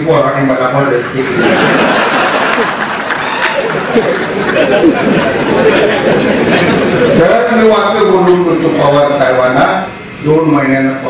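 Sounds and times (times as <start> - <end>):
several voices talking: 3.7 - 9.5.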